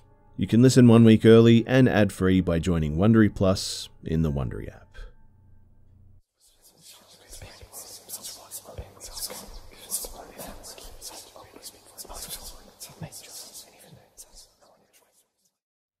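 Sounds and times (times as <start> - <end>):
eerie whispering: 6.4 - 15.4.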